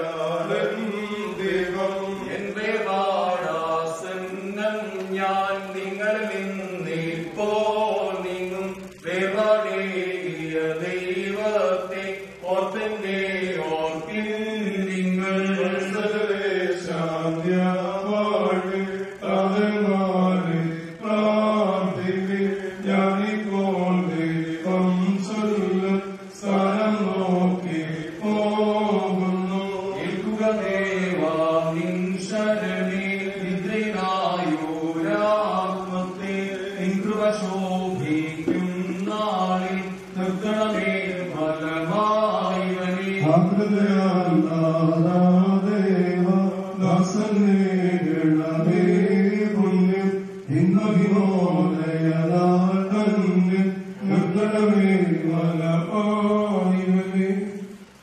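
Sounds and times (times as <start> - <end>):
men chanting a hymn: 0.0 - 58.0.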